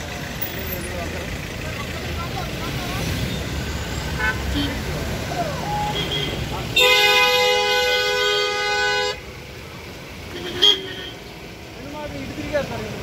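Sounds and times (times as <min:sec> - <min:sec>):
passing cars rumbling: 0:00.0 - 0:13.0
vehicle horn blast: 0:05.9 - 0:09.2, 0:10.3 - 0:11.2.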